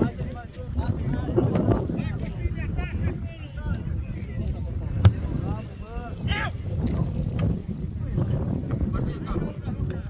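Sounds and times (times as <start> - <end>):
faint voices: 0.0 - 10.0
wind buffeting microphone: 0.0 - 10.0.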